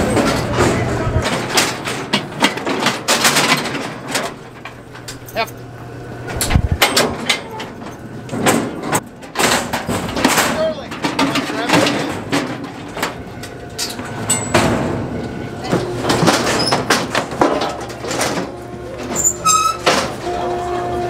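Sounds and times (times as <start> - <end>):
indistinct voices: 0.0 - 2.1, 10.4 - 16.9, 17.6 - 21.0
steel gates clanking and sliding: 0.0 - 21.0.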